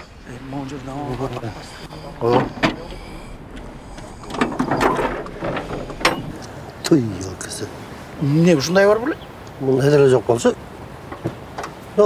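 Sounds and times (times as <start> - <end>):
men talking: 0.0 - 10.7.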